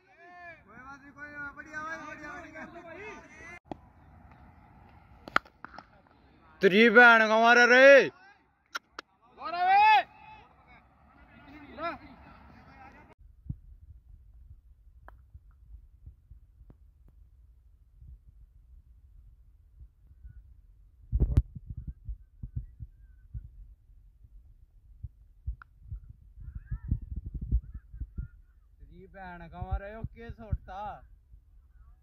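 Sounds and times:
low wind rumble: 13.2s - 32.0s.

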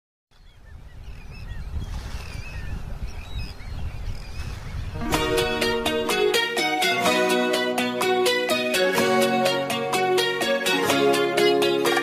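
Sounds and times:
pop song with guitar and beat: 5.0s - 12.0s.

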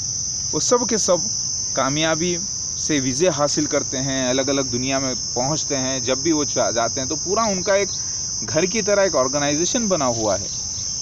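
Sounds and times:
high-pitched insect drone: 0.0s - 11.0s
man speaking: 0.6s - 10.6s.

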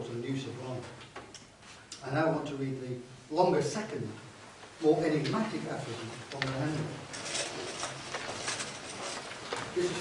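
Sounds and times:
soft rustling from handling: 4.5s - 10.0s.

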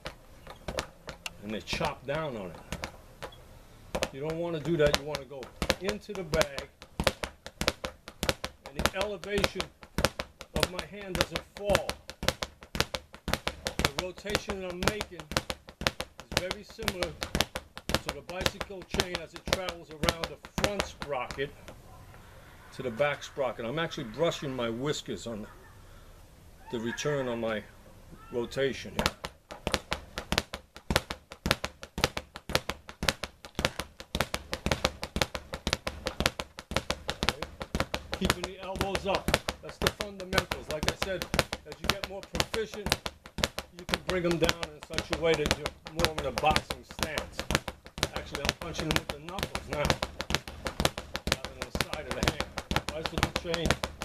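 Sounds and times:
speed bag being punched: 0.0s - 21.6s, 28.8s - 54.0s.

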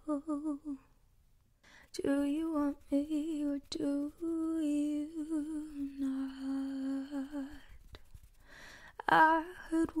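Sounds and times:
woman humming softly: 0.0s - 0.9s.

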